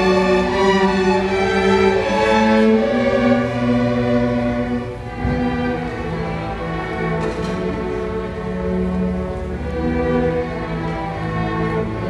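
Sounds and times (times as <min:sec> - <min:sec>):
string orchestra bowing held notes: 0:00.0 - 0:12.0.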